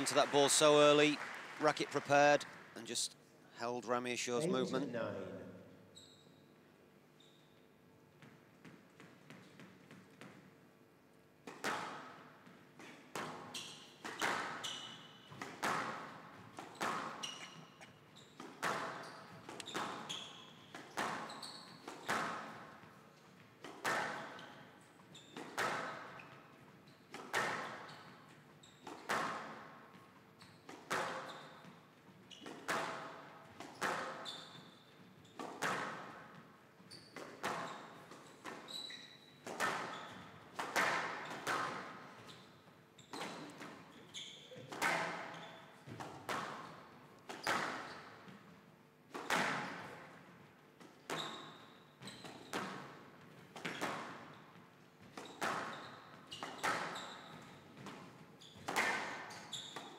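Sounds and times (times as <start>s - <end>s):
shoe squeaks: 5.9s - 6.6s, 7.2s - 7.7s, 13.5s - 15.2s, 16.7s - 22.2s, 24.3s - 25.4s, 30.4s - 32.7s, 33.7s - 35.5s, 36.8s - 40.4s, 42.1s - 45.9s, 51.0s - 52.6s, 53.7s - 57.6s, 58.3s - 59.9s
squash ball hits echoing: 35.4s - 36.4s, 40.6s - 42.0s, 57.8s - 59.4s.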